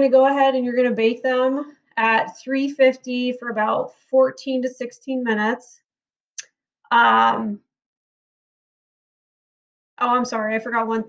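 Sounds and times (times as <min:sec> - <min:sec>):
person speaking: 0:06.9 - 0:07.6.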